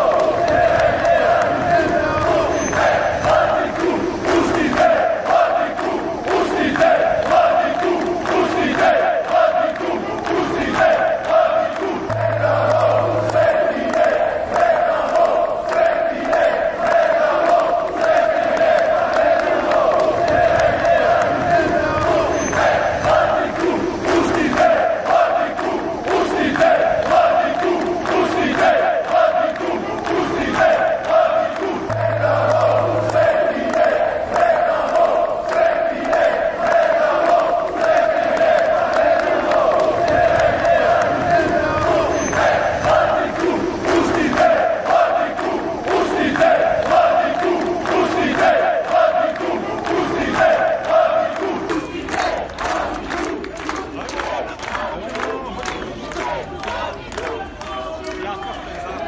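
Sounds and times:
crowd chanting in unison: 0:00.0 - 0:59.0.

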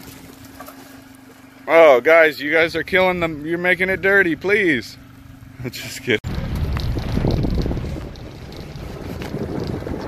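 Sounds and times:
vehicle rumbling on dirt road: 0:00.0 - 0:10.0
wind buffeting microphone: 0:06.2 - 0:10.0.

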